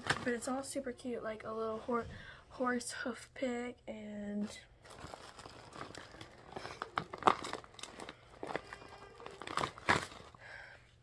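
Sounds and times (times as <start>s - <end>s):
packaging crinkling and rustling: 0.0s - 0.5s, 4.8s - 10.4s.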